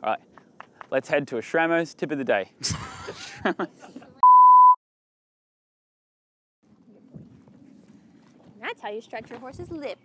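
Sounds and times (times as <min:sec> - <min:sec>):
man laughing: 0:02.6 - 0:04.2
electronic beep: 0:04.2 - 0:04.8.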